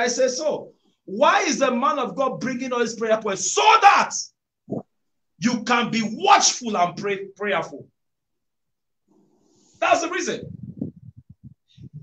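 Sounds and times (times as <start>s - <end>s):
man speaking: 5.4s - 7.9s, 9.8s - 10.5s.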